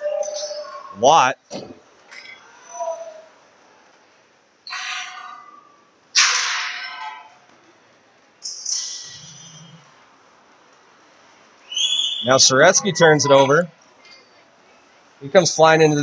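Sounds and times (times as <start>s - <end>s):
quiet rink background: 0.0s - 16.0s.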